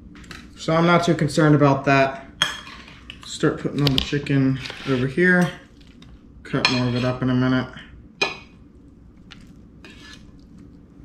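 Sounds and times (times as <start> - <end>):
fork scraping and tapping plate: 9.8 - 10.4.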